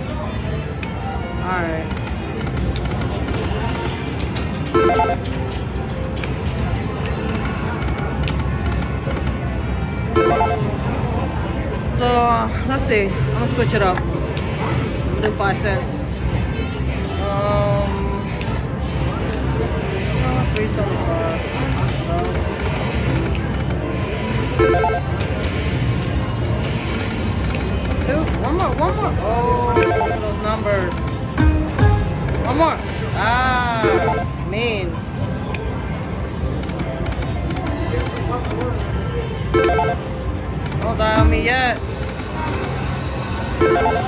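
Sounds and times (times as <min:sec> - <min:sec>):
casino floor din: 0:01.8 - 0:09.3
slot machine sounds: 0:02.6 - 0:07.1, 0:10.0 - 0:11.2, 0:23.2 - 0:25.4, 0:29.6 - 0:32.6, 0:33.4 - 0:34.5, 0:39.4 - 0:44.0
casino din: 0:39.6 - 0:40.0.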